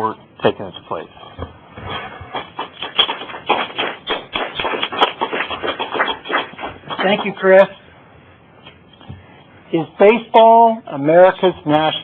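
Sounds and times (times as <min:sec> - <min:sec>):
audience clapping: 0:02.3 - 0:07.4.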